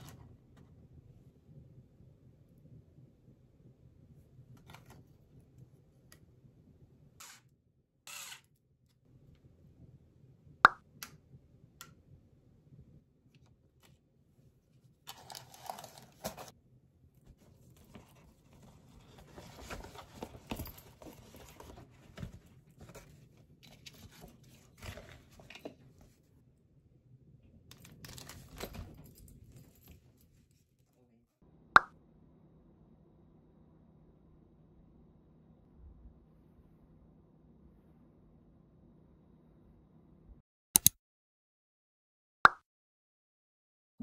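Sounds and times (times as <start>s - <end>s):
wrapping rustling and crinkling: 15.1s - 16.6s, 17.3s - 25.8s
sharp click: 40.8s - 41.0s.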